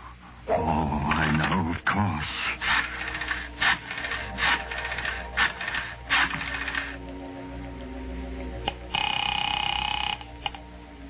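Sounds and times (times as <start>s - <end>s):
organ music: 2.4s - 11.0s
buzzing telephone ring tone: 8.9s - 10.6s.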